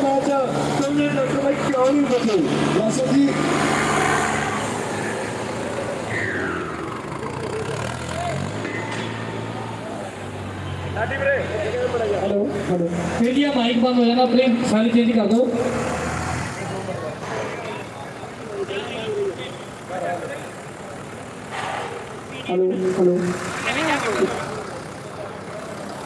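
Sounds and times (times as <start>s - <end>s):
diesel tractor engines under load: 0.0s - 26.0s.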